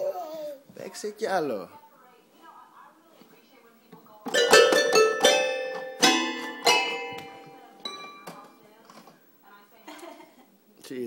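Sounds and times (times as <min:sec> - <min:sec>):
toy keyboard notes: 0:04.3 - 0:08.3.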